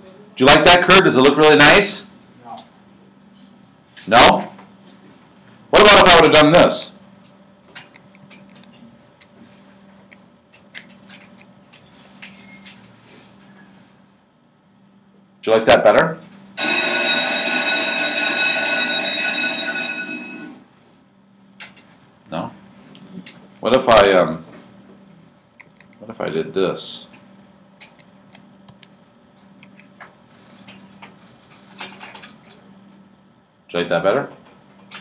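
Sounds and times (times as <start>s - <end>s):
electric bell ringing: 16.6s - 20.7s.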